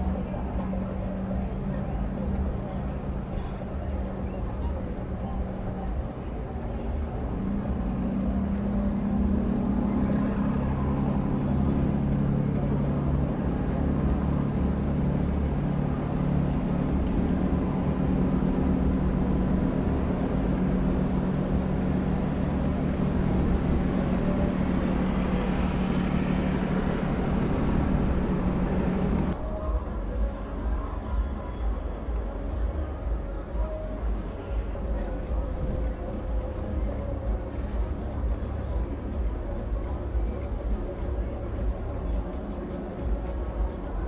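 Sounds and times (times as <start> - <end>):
boat diesel engine drone: 0.0 - 44.0.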